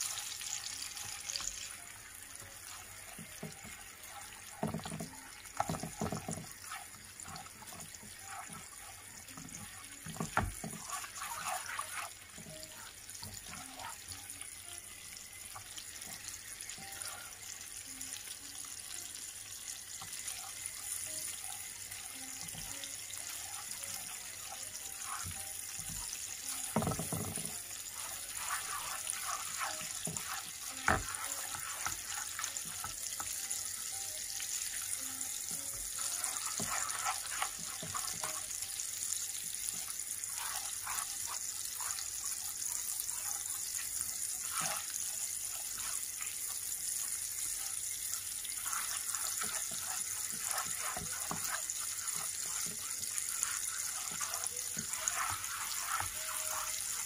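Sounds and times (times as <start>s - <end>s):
spatula scraping against a pan: 0.0s - 14.5s, 15.2s - 17.6s, 19.8s - 57.0s
butter and sugar sizzling in a pan: 0.0s - 57.0s.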